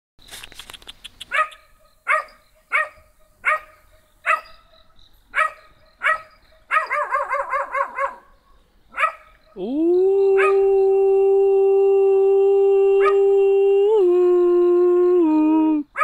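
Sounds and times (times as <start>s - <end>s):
quick clicks: 0.2s - 1.6s
small dog barking: 1.2s - 4.7s, 5.3s - 8.3s, 8.9s - 9.3s.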